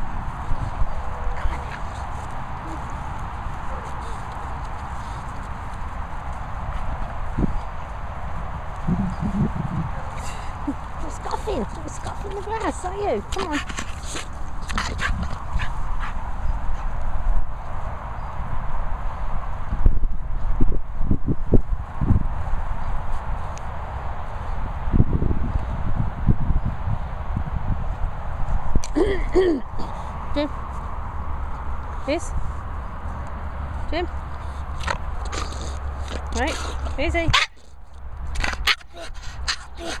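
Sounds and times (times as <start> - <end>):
steady low rumble: 0.0 - 17.8.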